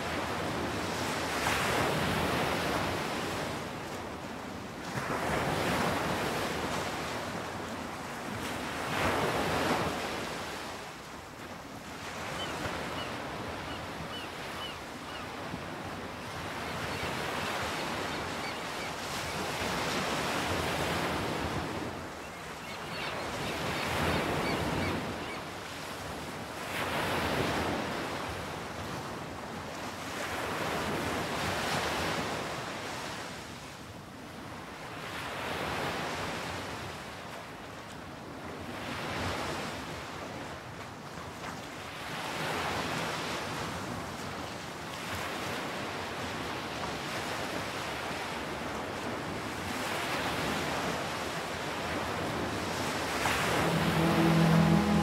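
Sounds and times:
sea surf breaking: 0:49.7 - 0:55.0.

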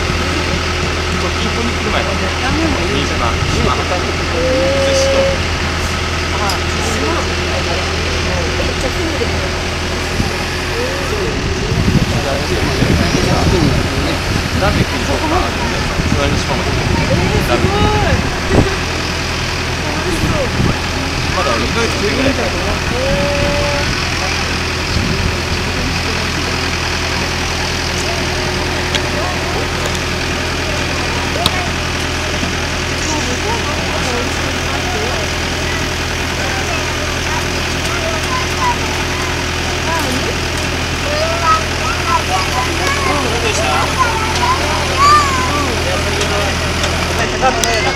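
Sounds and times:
people's voices: 0:00.0 - 0:47.9
truck engine droning: 0:00.0 - 0:47.9.

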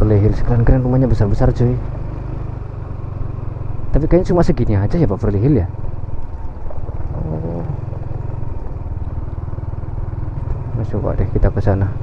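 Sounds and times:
motor scooter engine humming: 0:00.0 - 0:12.0.

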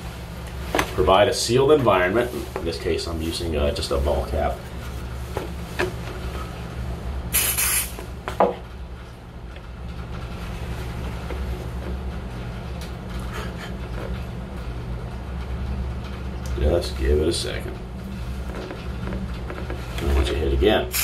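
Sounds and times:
steady low hum: 0:00.0 - 0:21.0
aerosol spray hiss: 0:07.3 - 0:08.0.

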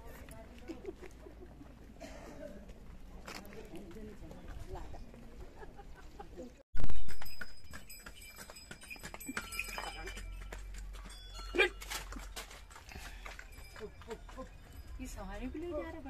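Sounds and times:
hooves clip-clopping on pavement: 0:02.6 - 0:05.4, 0:06.9 - 0:16.0.

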